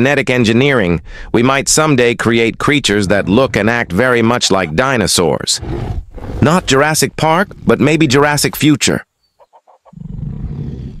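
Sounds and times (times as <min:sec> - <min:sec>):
low creature growl: 0:10.0 - 0:11.0.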